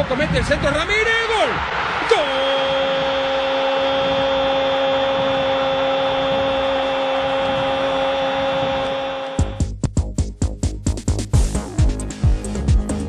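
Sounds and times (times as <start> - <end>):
stadium crowd noise: 0.0 - 9.6.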